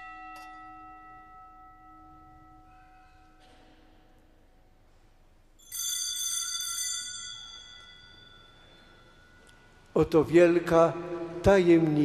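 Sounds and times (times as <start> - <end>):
small bells ringing: 0.0 - 3.6, 5.6 - 9.9.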